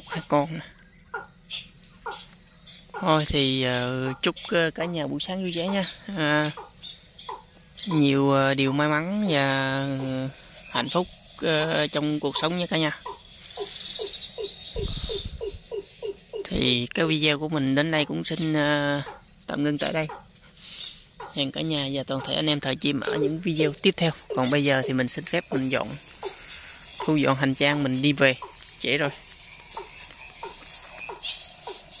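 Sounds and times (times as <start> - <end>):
high chirps: 0.0 - 32.0
wind rumble on microphone: 14.7 - 15.8.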